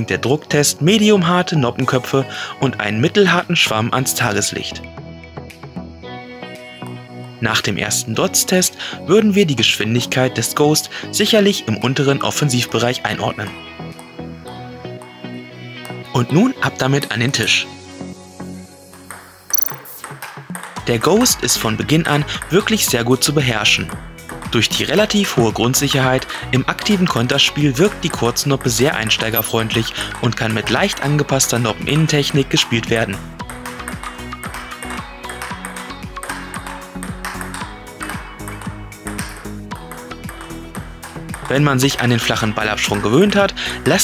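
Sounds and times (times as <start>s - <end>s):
background music: 0.0s - 44.0s
table tennis ball clicks: 19.5s - 20.0s, 29.3s - 29.6s
short high ringing sound: 19.6s - 19.9s.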